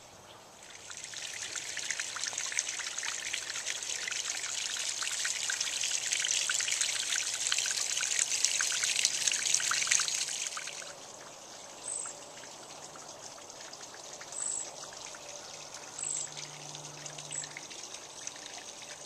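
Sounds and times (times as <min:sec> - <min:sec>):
water trickling over rocks: 0:00.5 - 0:19.0.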